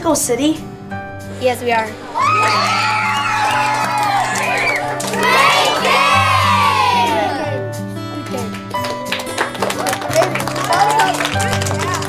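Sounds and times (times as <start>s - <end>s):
background music: 0.0s - 12.0s
children cheering and shouting: 2.0s - 7.6s.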